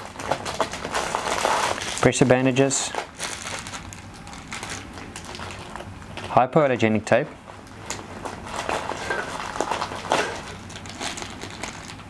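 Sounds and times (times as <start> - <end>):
wrappers rustling and crinkling: 0.0 - 6.4, 7.5 - 12.0.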